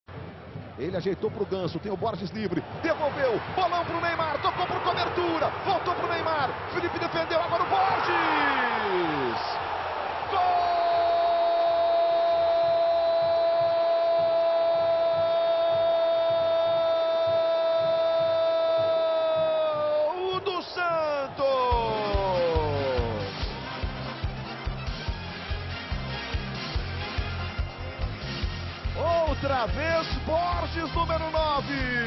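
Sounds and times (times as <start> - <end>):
stadium crowd noise: 0.1 - 32.0
music with steady beat: 21.6 - 32.0.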